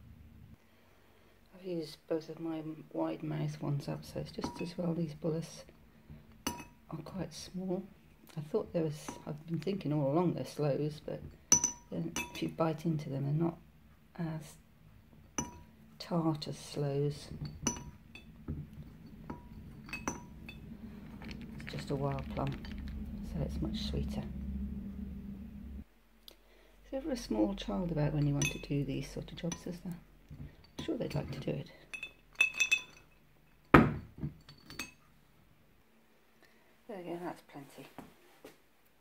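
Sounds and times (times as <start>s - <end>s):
frozen plums clinking into glass bottle: 17.2s - 23.5s, 28.1s - 29.8s, 30.6s - 33.2s
knock on glass bottle: 17.3s - 22.8s, 33.8s - 34.4s.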